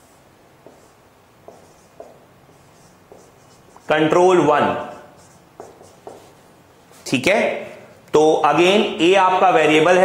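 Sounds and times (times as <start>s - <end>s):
marker writing on whiteboard: 0.6s - 7.1s.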